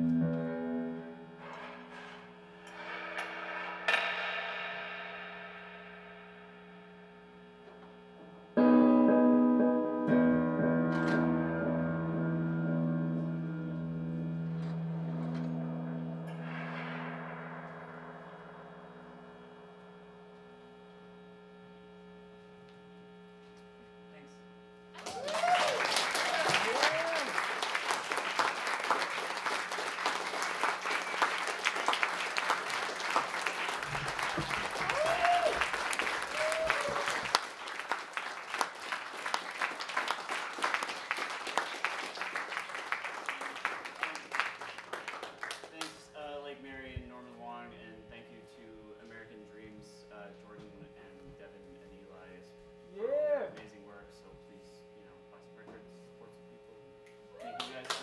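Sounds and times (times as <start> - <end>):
sustained drone tones: 0.0 - 9.7, 10.3 - 21.8
audience cheering: 25.0 - 44.6, 57.4 - 58.0
audience applause: 25.0 - 45.9.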